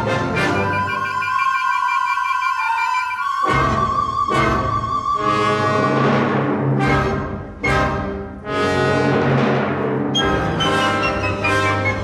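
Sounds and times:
flute holding high note: 0.5s - 6.0s.

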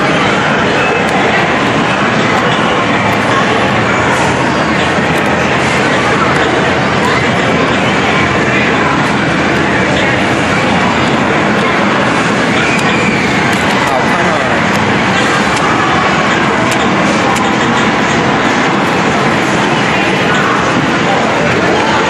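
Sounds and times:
arcade game machines: 0.0s - 22.0s
many voices talking: 0.0s - 22.0s.

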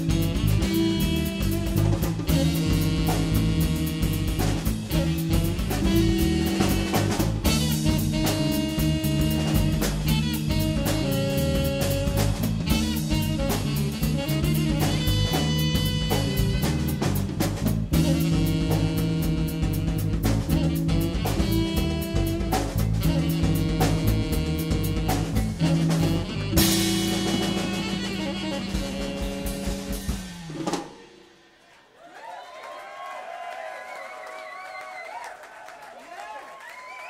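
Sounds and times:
saxophone bass and drums jazz: 0.0s - 31.5s
audience cheering and applause: 31.5s - 37.0s.

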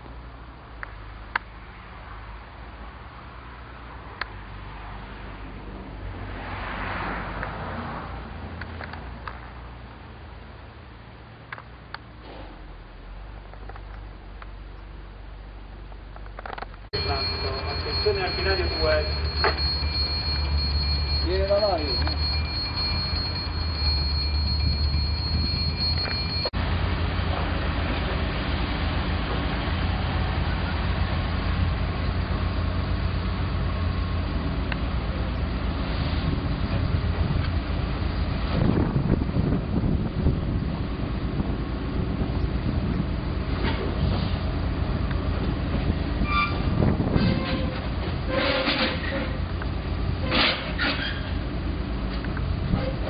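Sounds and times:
locomotive low rumble: 7.2s - 53.0s
high steady whine: 17.0s - 26.6s.

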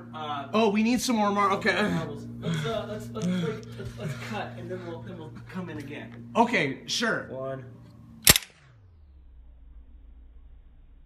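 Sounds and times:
marble launcher spring snap: 8.2s - 8.8s.

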